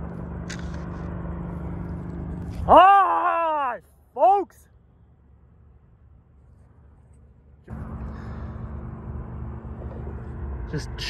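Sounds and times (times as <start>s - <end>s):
small motorbike engine running: 0.0s - 2.7s
faint low rumble: 0.0s - 3.1s, 3.8s - 11.0s.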